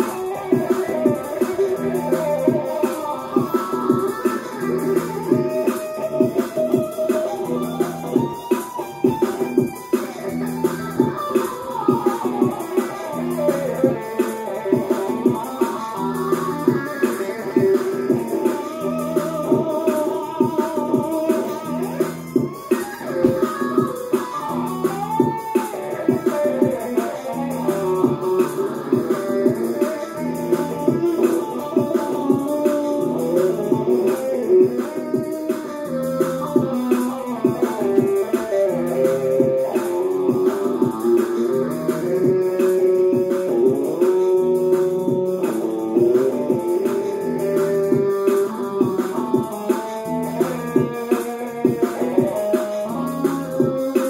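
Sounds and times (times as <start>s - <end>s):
electric guitar playing: 0.0s - 54.0s
rock music through speakers: 0.0s - 54.0s
repeating bass line: 27.3s - 31.3s.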